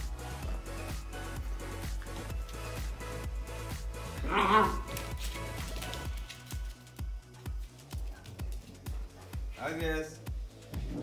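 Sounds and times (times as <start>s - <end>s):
background music with steady beat: 0.0s - 11.0s
puppy whining: 4.2s - 5.2s.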